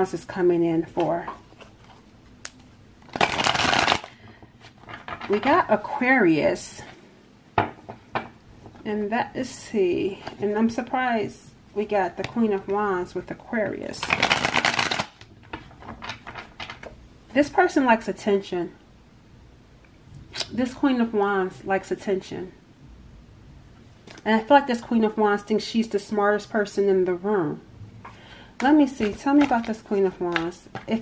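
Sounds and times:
cards being shuffled: 0:01.0 - 0:04.1, 0:14.0 - 0:16.9, 0:28.9 - 0:31.0.

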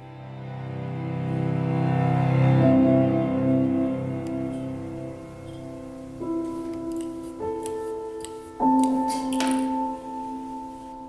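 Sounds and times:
piano chord ringing: 0:00.0 - 0:11.0
soft hiss: 0:03.0 - 0:11.0.

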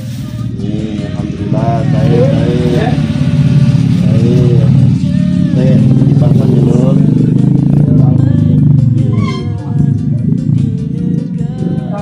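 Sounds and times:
motorcycle engine idling: 0:00.3 - 0:12.0
music with regular beat: 0:00.3 - 0:12.0
voices: 0:00.3 - 0:12.0.

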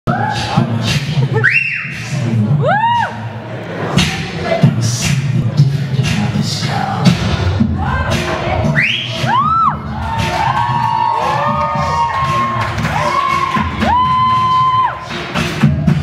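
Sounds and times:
dance music with steady beat: 0:00.1 - 0:16.0
audience cheering and whooping: 0:07.9 - 0:15.1.

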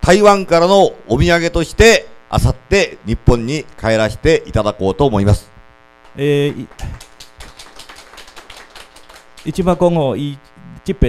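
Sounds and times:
man speaking: 0:00.0 - 0:05.6, 0:06.2 - 0:07.0, 0:09.4 - 0:11.0.

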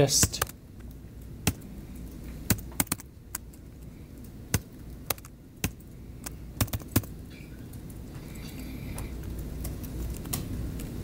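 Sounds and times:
computer keyboard typing: 0:00.0 - 0:08.0
low steady hum: 0:00.0 - 0:11.0.

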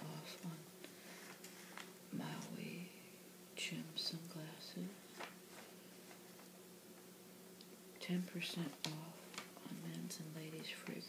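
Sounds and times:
woman reading softly: 0:00.0 - 0:05.7, 0:08.0 - 0:11.0.

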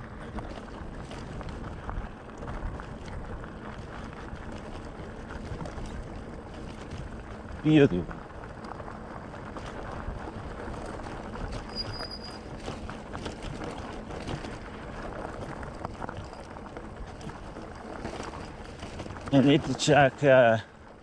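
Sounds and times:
bicycle tyres crunching on gravel: 0:00.0 - 0:21.0
bike clicks and rattles: 0:00.0 - 0:21.0.

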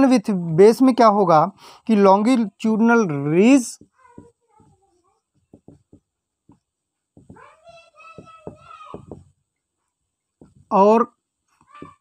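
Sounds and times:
marker on whiteboard: 0:03.2 - 0:12.0.

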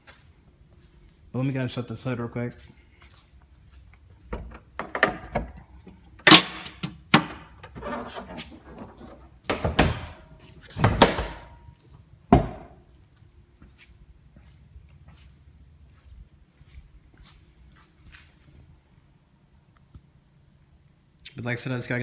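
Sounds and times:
car hood knocks and thuds: 0:12.3 - 0:12.8.

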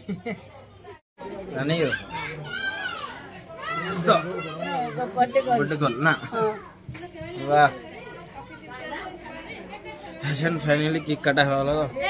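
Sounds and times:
children calling and chattering: 0:00.0 - 0:12.0.

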